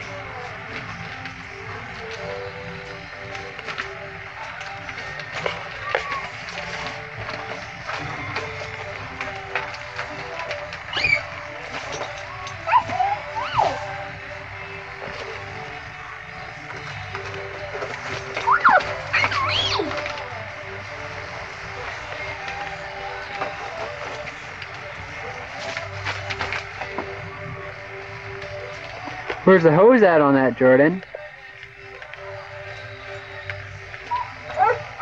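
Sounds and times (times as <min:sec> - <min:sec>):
children squealing: 0:10.9 - 0:11.5, 0:12.6 - 0:14.0, 0:18.4 - 0:20.0.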